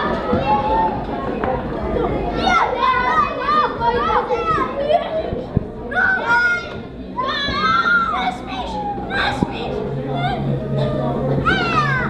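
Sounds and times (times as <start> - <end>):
children's excited voices: 0.0 - 12.0.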